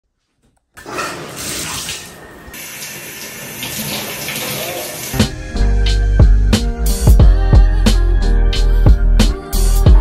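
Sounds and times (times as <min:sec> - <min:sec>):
shower spray: 0:01.4 - 0:05.3.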